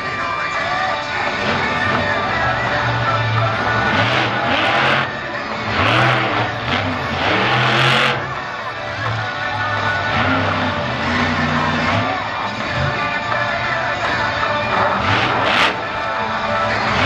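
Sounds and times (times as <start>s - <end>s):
background music: 0.0s - 17.0s
monster truck engine revving: 0.0s - 17.0s.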